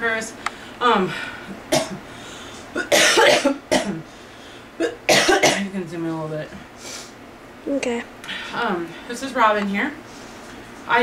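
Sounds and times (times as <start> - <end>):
woman coughing: 1.7 - 2.1, 2.7 - 4.1, 4.8 - 5.7.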